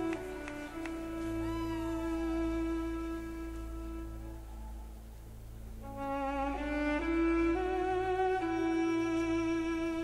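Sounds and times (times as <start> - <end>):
sustained accompaniment: 0.0 - 10.0
violin playing slow melody: 0.0 - 10.0.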